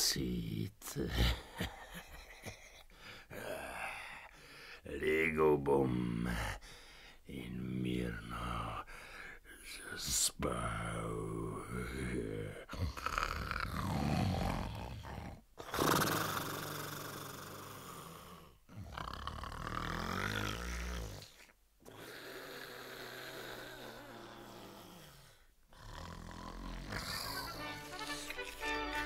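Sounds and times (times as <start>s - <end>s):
exaggerated snoring: 10.8s - 29.0s.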